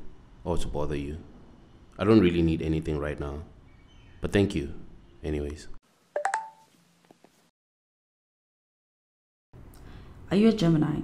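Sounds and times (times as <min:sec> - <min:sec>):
laptop two-note beep: 0:06.2 - 0:06.6.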